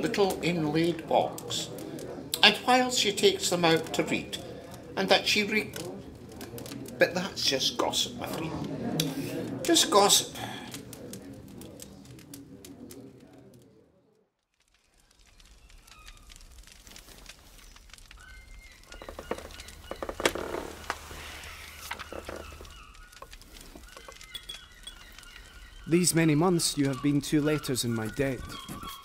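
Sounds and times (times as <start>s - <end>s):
birds calling: 17.5s - 29.0s.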